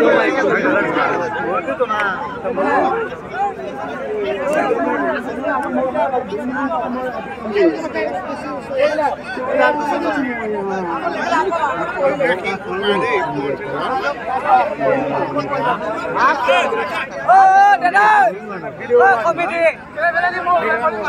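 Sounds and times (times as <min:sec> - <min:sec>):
crowd babble: 0:00.0 - 0:21.0.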